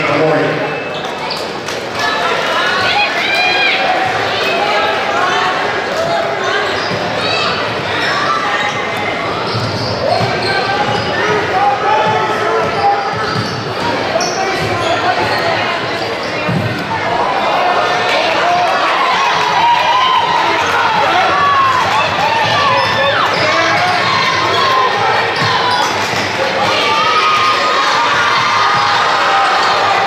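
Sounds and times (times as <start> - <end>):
crowd voices echoing in gym: 0.0 - 30.0.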